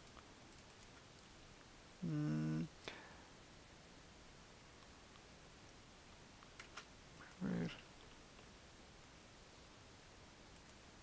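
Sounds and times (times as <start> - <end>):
short vocal sound: 2.0 - 2.7.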